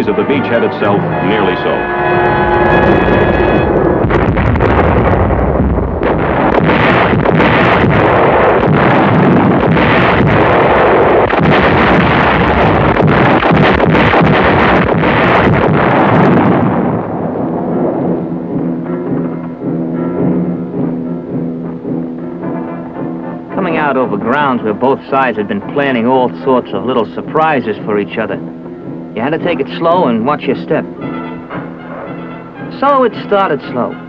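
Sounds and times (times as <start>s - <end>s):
orchestral music: 0.0s - 7.4s, 17.2s - 34.0s
artillery gunfire and blasts: 2.4s - 21.2s.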